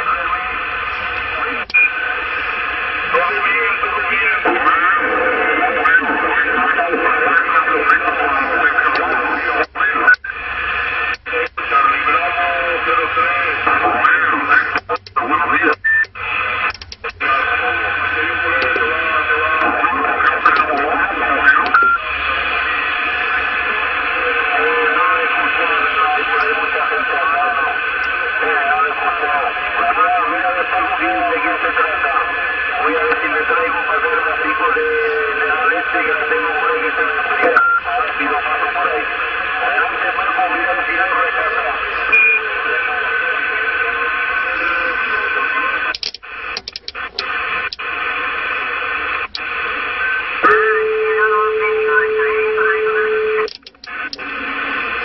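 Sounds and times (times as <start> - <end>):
garbled radio voices: 0.0 - 55.0
radio static: 0.0 - 55.0.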